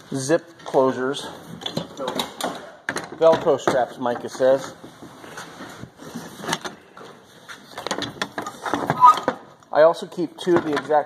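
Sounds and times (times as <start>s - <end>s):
tools knocking and clattering: 0.6s - 5.2s, 7.7s - 9.5s, 10.4s - 11.0s.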